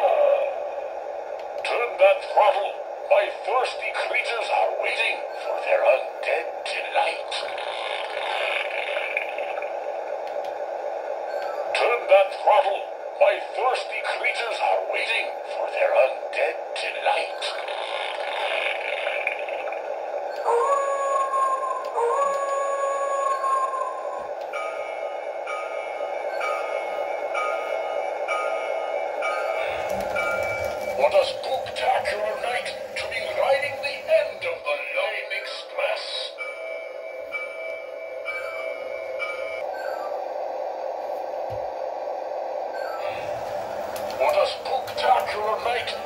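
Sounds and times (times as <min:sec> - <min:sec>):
train wheels rumbling on track: 0:24.0 - 0:36.4, 0:42.7 - 0:46.0
toy diesel engine drone: 0:29.2 - 0:36.6, 0:42.8 - 0:46.0
bell-like chime ringing: 0:36.3 - 0:40.1.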